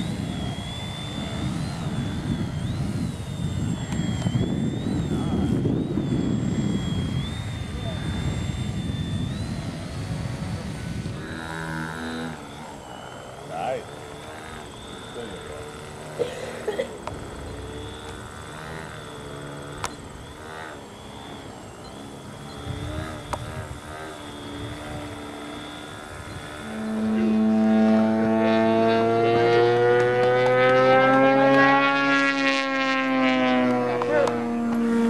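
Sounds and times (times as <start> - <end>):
deep droning tone: 0.0 - 35.0
small electric motor whine: 0.0 - 35.0.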